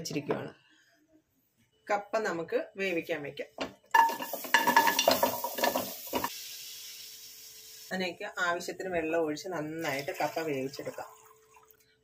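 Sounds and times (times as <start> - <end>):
chunks clattering into metal pot: 4.0 - 6.3.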